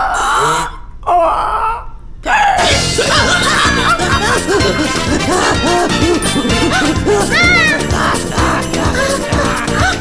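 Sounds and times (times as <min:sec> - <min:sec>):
cartoon character cries: 0:06.7 - 0:10.0.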